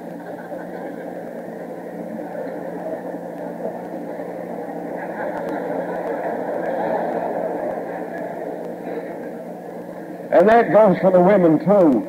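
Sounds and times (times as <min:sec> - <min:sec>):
large audience laughing: 0:00.0 - 0:10.2.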